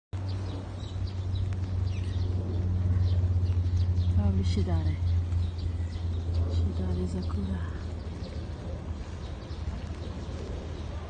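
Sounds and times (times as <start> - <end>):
birds chirping: 0.2 - 11.0
steady low rumble: 0.2 - 11.0.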